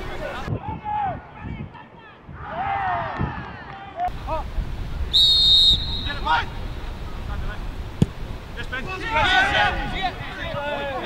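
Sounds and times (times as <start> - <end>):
referee whistle blast: 5.1 - 6.5
ball kick thud: 8.0 - 8.2
players shouting: 8.6 - 11.0.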